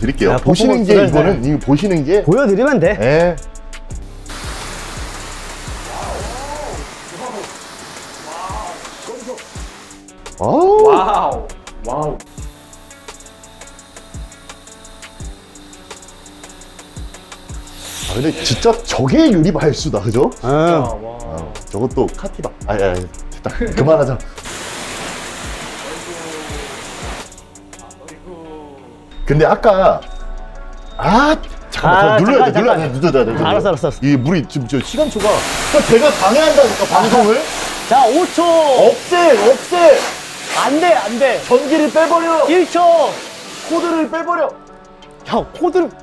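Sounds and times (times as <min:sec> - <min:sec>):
water spraying on glass: 0:04.0 - 0:10.4, 0:12.3 - 0:19.1, 0:24.4 - 0:27.5, 0:34.8 - 0:44.3.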